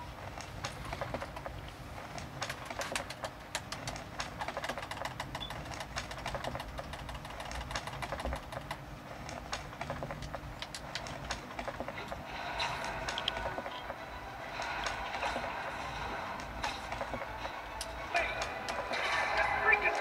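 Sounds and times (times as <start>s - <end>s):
low room rumble: 0.0s - 20.0s
game controller buttons clicking: 0.4s - 12.2s, 13.0s - 14.0s.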